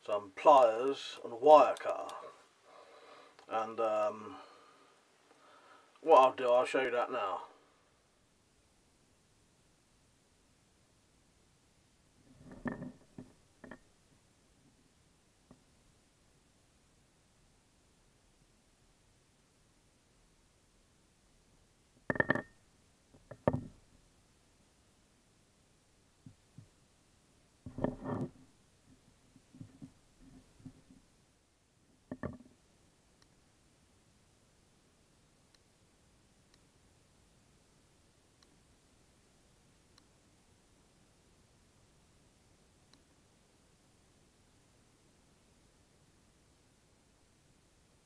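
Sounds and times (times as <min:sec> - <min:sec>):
metal tool knocking on wooden table: 0:22.1 - 0:22.5.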